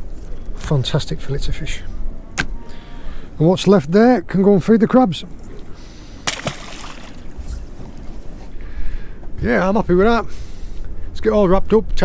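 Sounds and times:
water around a boat: 0:00.0 - 0:12.0
wind: 0:00.0 - 0:12.0.

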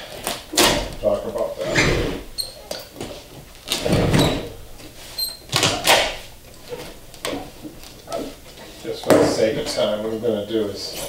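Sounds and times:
brief high squeak: 0:05.1 - 0:05.5.

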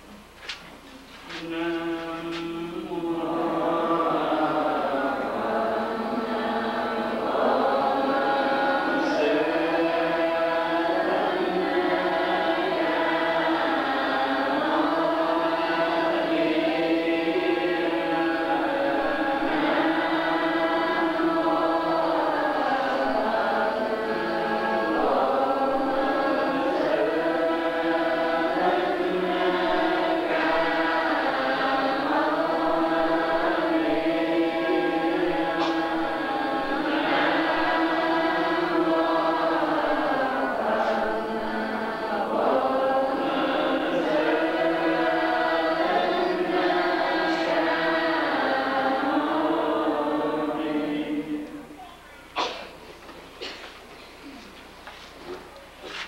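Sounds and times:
group chanting in unison: 0:01.4 - 0:51.8.

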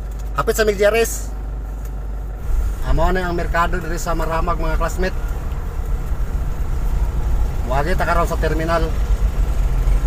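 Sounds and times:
car engine low rumble: 0:00.0 - 0:10.0
road noise: 0:00.0 - 0:10.0.

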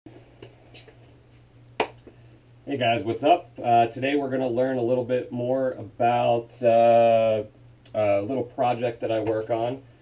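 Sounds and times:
low steady hum: 0:00.1 - 0:10.0
sharp hand clap: 0:01.8 - 0:02.1.

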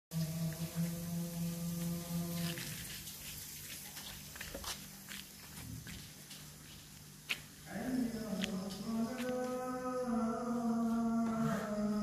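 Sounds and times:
chanted call to prayer: 0:00.1 - 0:02.8, 0:07.6 - 0:12.0
low hum: 0:00.1 - 0:03.1.

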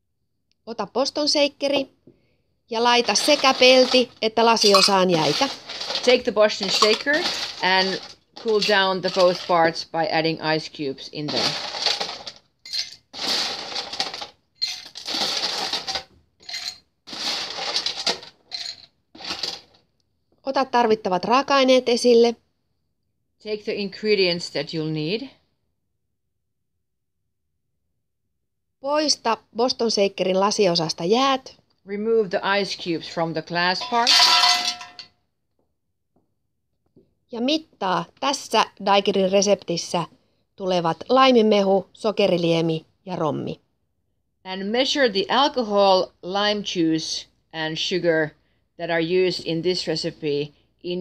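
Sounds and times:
ice cubes clattering into shaker: 0:03.0 - 0:09.8, 0:11.3 - 0:19.7, 0:33.8 - 0:35.0.

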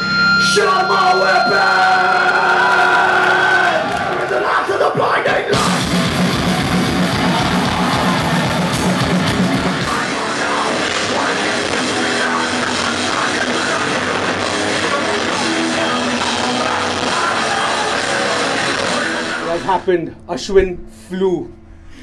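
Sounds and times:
heavy metal band playing: 0:00.0 - 0:04.4, 0:05.4 - 0:19.8.

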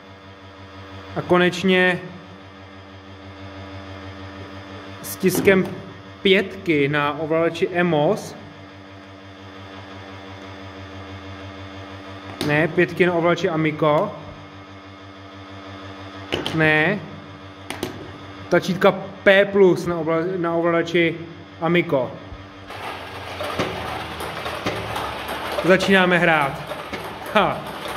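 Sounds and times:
motor humming with low throb: 0:00.0 - 0:27.9.

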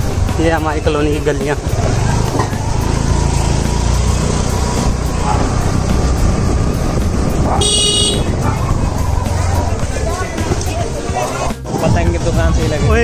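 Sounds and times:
motor scooter engine rumble: 0:00.0 - 0:11.7
scooter horn toot: 0:07.6 - 0:08.4.

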